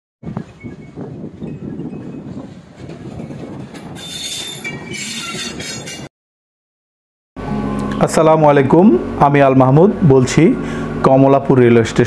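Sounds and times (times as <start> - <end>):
wheels squealing: 0.4 - 6.1
train wheels rumbling: 0.8 - 6.1.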